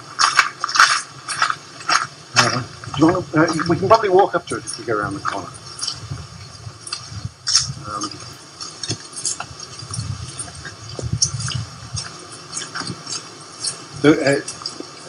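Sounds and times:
footsteps on hard paving: 0.0 - 15.0
low wind rumble: 0.0 - 15.0
microphone handling noise: 0.0 - 15.0.

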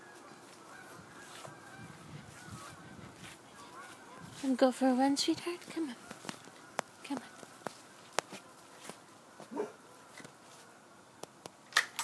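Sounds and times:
faint wavering bird calls: 0.0 - 11.2.

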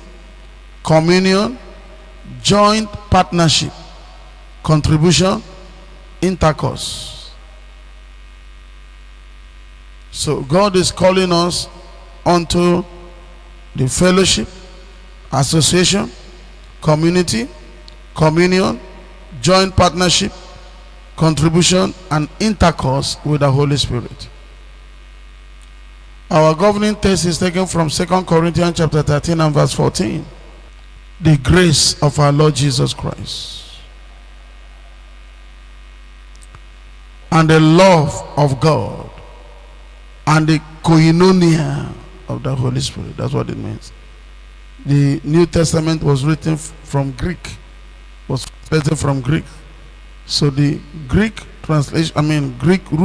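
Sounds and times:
electrical mains hum: 0.0 - 53.0
faint hiss: 0.0 - 53.0.

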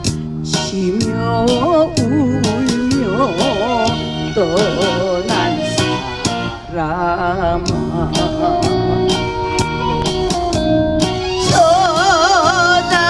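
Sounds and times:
backing track with steady beat: 0.0 - 13.0
woman singing with vibrato: 0.5 - 9.0, 11.4 - 13.0.

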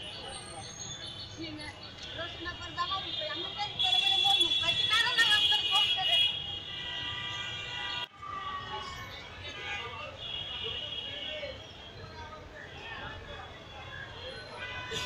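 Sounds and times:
voices of passers-by: 0.0 - 15.0
vehicle horns: 2.2 - 8.8, 9.4 - 11.9, 14.2 - 15.0.

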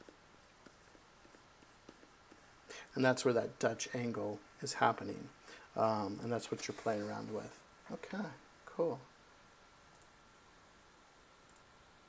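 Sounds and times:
stylus scratching on tablet: 0.0 - 2.7, 6.1 - 7.6.

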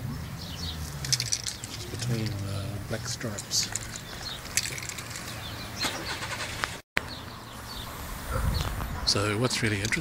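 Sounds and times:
passing traffic rumble: 0.0 - 10.0.

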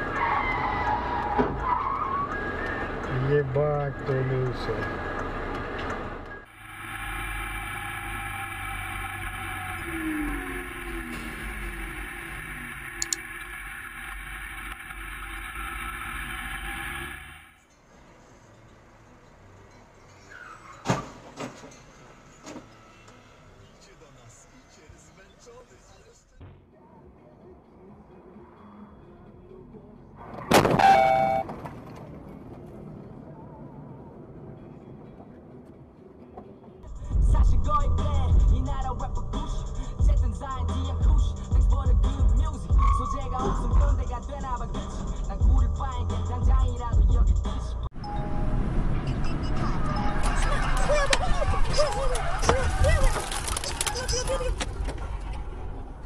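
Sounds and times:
car engine and road noise: 0.0 - 56.0
car crash: 30.4 - 32.5, 48.8 - 56.0.

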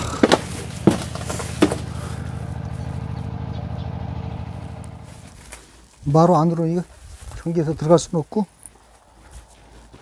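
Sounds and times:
engine running: 0.0 - 6.1.

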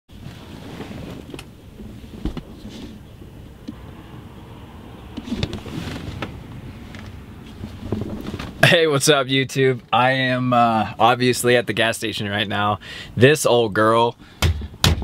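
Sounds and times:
vehicle rumble inside cabin: 0.1 - 9.1.

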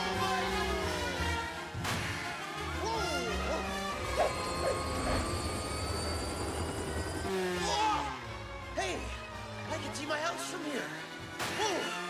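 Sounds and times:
helicopter rotor blade chop: 3.0 - 8.2
high turbine whine: 3.8 - 7.4.

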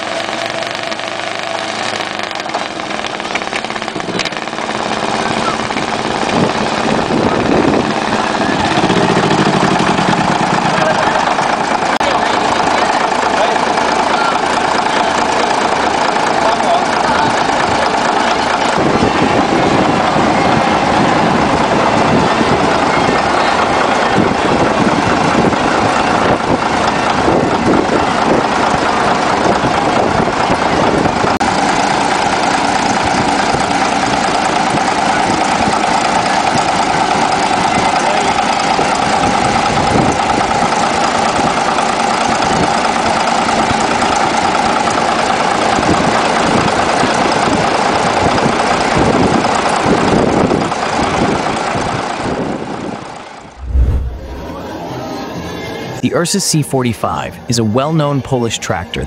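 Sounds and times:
diesel engine running: 0.0 - 56.1.

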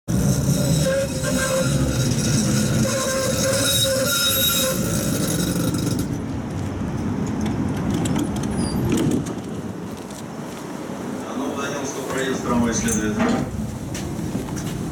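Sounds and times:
high ringing squeal: 0.1 - 6.1
tram wheels rumbling on rails: 0.1 - 14.9.

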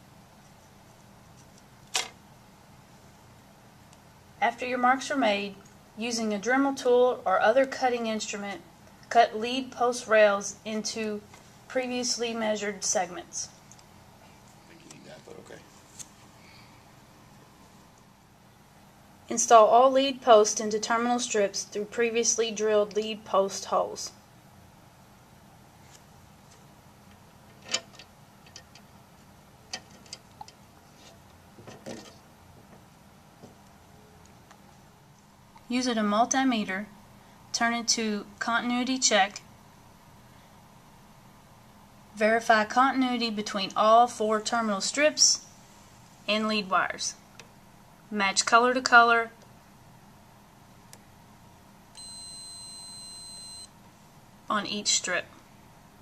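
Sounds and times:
multimeter beep: 52.0 - 53.8.

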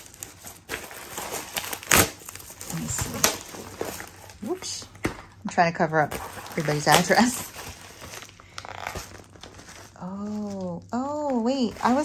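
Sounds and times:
packaging crinkling and rustling: 0.0 - 12.0.

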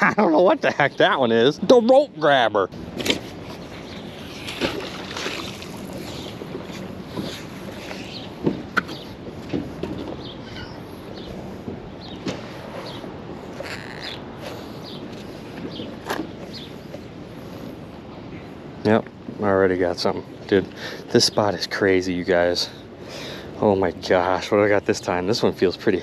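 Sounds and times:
steady outdoor noise: 0.0 - 26.0.

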